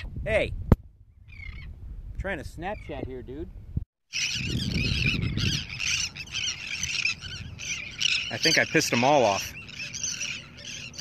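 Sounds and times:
birds squawking: 1.3s - 1.7s, 4.1s - 11.0s.

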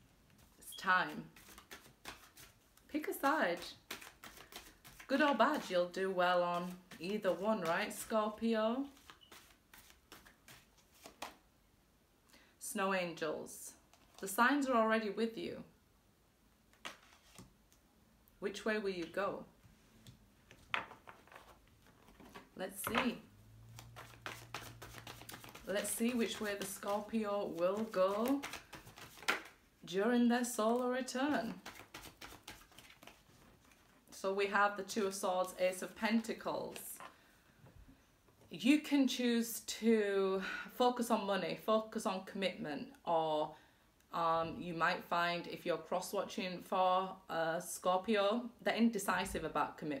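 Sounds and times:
cards slapping on a table: 1.4s - 2.5s, 3.9s - 5.1s, 9.0s - 11.4s, 23.8s - 27.0s, 27.8s - 29.6s, 31.4s - 33.2s.

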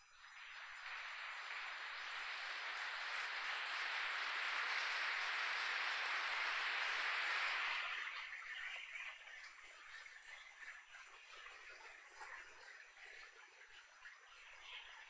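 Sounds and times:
large crowd applauding: 0.9s - 8.0s.

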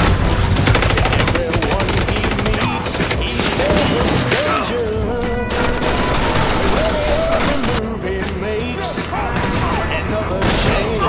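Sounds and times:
rapid gunfire: 0.0s - 11.0s.

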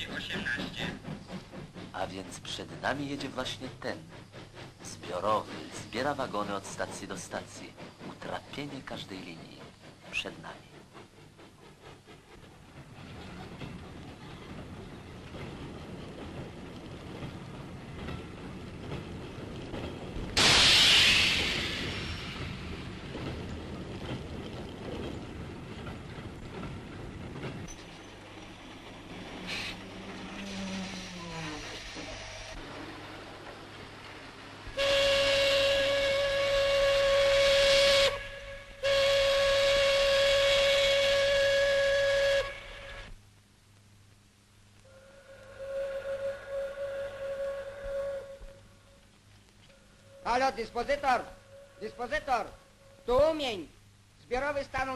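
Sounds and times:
freight train rumbling on rails: 0.0s - 43.3s, 49.9s - 54.9s
loud hiss: 20.4s - 23.1s, 29.4s - 32.6s
steam locomotive whistle: 34.7s - 43.1s, 44.8s - 49.0s, 49.8s - 53.0s.

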